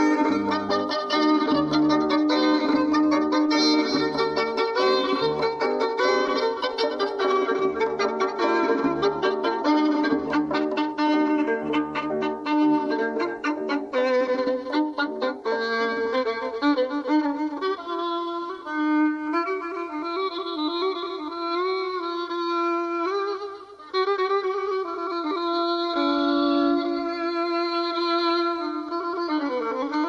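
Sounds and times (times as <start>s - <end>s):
plucked string notes: 0.0s - 16.3s
solo violin sliding phrases: 0.0s - 30.0s.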